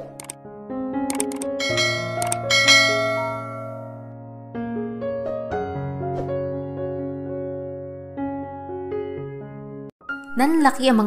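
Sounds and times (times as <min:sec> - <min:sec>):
soft piano music: 0:00.0 - 0:11.0
mouse clicks: 0:01.1 - 0:01.4
bright bell ding: 0:01.6 - 0:04.0.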